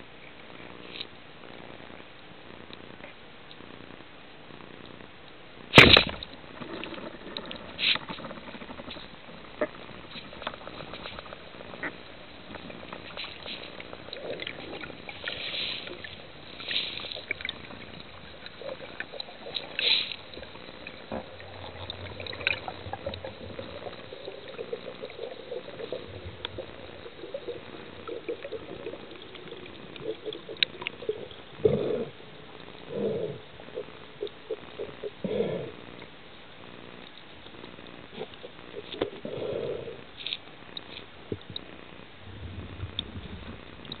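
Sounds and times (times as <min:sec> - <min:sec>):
faint low hum: 0:00.0 - 0:44.0
faint underwater clicks and crackles: 0:00.0 - 0:44.0
underwater hiss: 0:13.1 - 0:17.8, 0:18.5 - 0:20.5.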